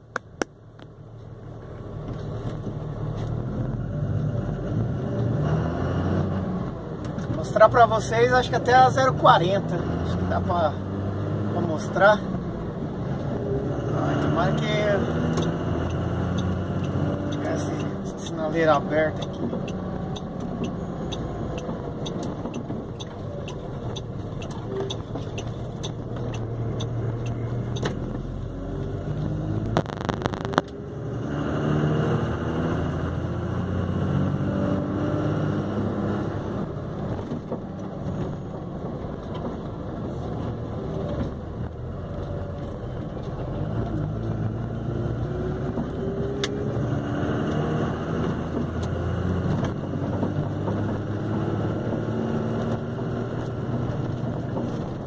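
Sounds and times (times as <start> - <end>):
truck diesel engine revving: 2.9 - 55.0.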